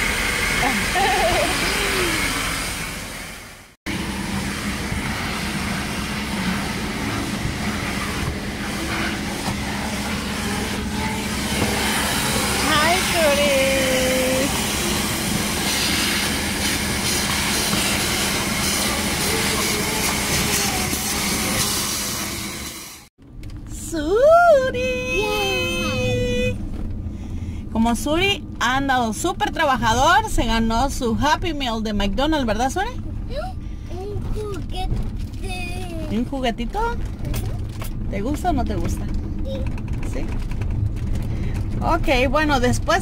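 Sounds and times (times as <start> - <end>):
vacuum cleaner running: 0.0 - 23.1.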